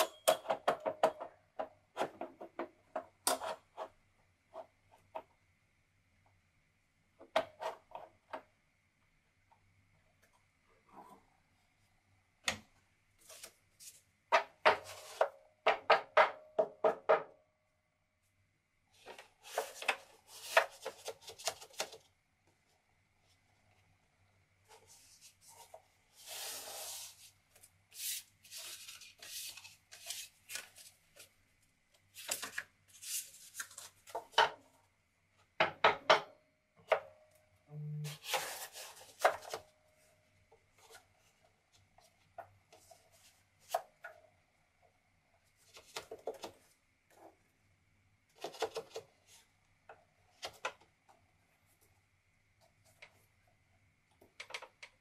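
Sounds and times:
paper sliding and rustling: 24.7 - 31.3, 32.1 - 34.0, 38.1 - 39.6.

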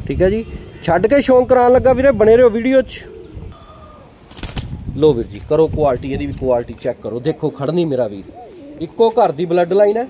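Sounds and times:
pigeons cooing softly: 0.4 - 1.3, 2.5 - 4.2, 6.8 - 9.5.

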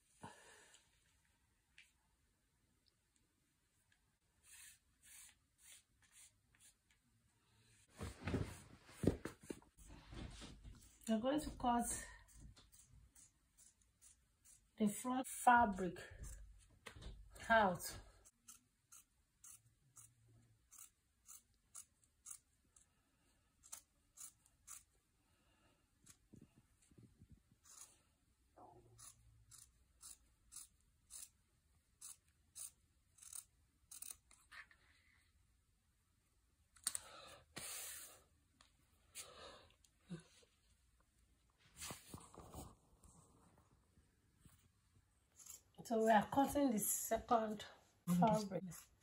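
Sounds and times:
fabric swishes: 7.8 - 10.6
scissors snipping fabric: 18.3 - 22.9, 23.5 - 24.9, 28.9 - 34.7.

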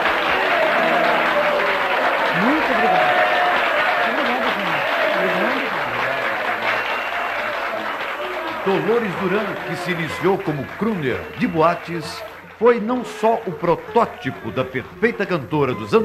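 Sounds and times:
audience applauding: 0.0 - 16.0
voices in the crowd: 0.0 - 16.0
man speaking: 8.6 - 16.0.

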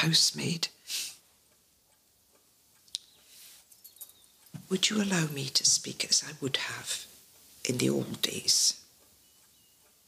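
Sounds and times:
clock ticking: 1.4 - 3.3, 4.0 - 10.0.

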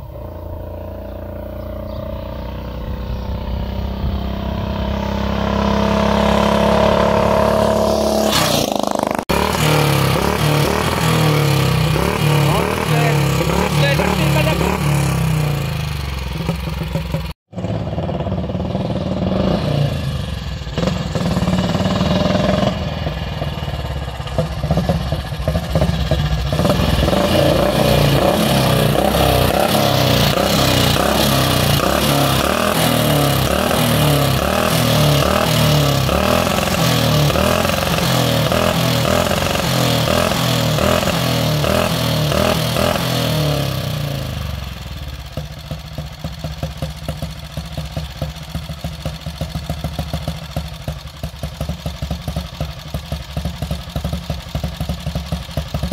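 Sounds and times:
motorcycle engine: 0.0 - 55.9.

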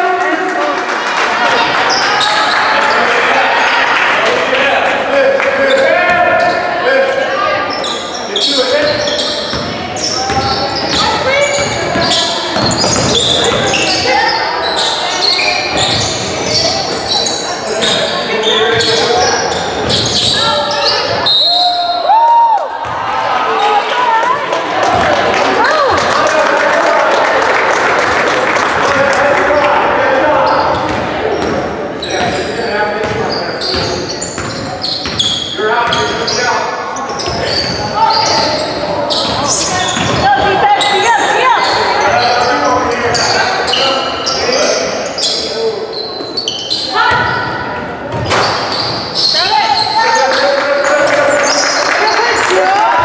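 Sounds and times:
indistinct voices in hall: 0.0 - 53.0
basketball bouncing on wooden floor: 9.5 - 13.8.

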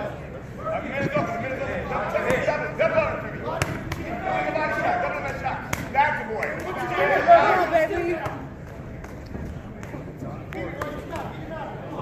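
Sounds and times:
voices of people: 0.0 - 12.0.

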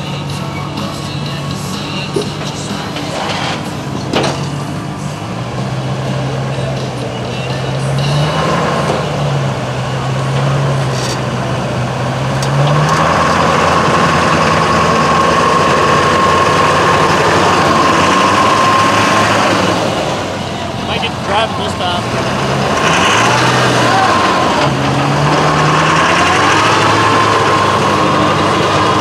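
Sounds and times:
diesel truck engine running: 0.0 - 29.0.

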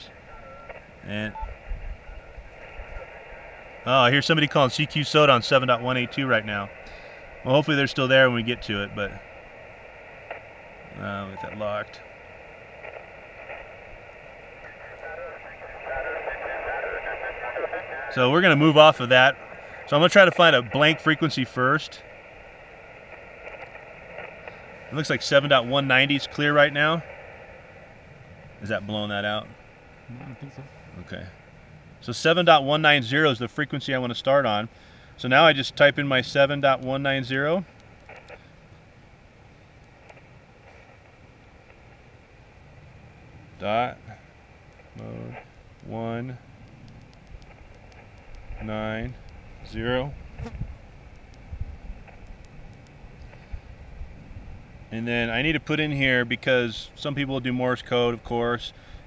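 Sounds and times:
wind rumble on microphone: 0.0 - 3.8, 46.3 - 55.6
radio band noise hiss: 0.0 - 59.0
person speaking over radio: 3.9 - 6.8, 7.4 - 9.2, 10.9 - 12.0, 14.6 - 22.0, 24.9 - 27.1, 28.6 - 31.3, 45.0 - 46.4.

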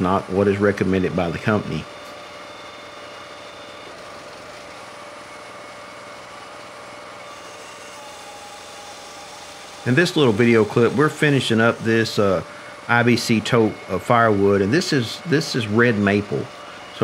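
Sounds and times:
engine running: 0.0 - 17.0
faint steady tones: 0.0 - 17.0.

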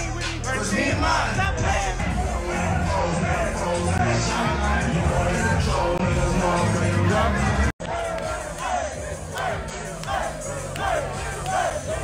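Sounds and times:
crowd shouting and chanting: 0.0 - 12.0
loud music with heavy bass: 0.0 - 12.0.

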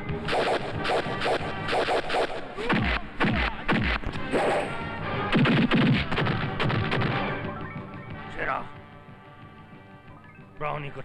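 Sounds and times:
background film score: 0.0 - 11.0
sharp whacks and crashes: 5.3 - 7.2.

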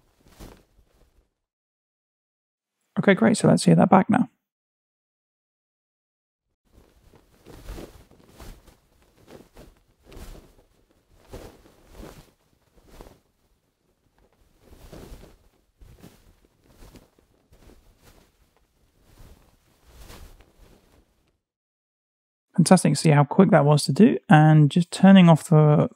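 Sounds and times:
fabric rustling and swishing: 0.0 - 1.4, 6.7 - 21.4.

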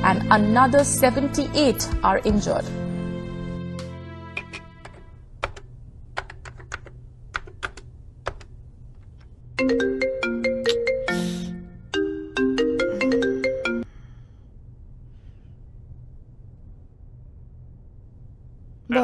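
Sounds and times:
laptop keys clicking: 4.5 - 8.5
mobile phone ringtone: 9.6 - 13.9.

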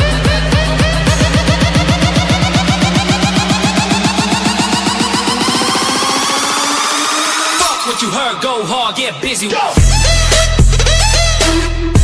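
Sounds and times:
electronic music build-up: 0.0 - 12.0.

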